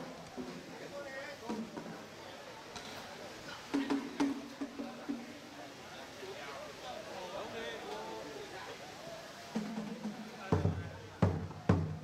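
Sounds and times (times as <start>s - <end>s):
drum struck with wooden stick: 1.5s - 2.0s, 3.7s - 5.3s, 9.6s - 12.0s.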